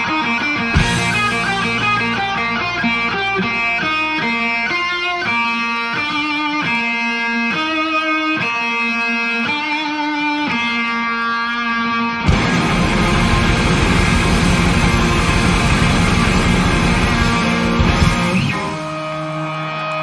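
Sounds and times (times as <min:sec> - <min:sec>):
electric guitar playing: 0:00.0 - 0:20.0.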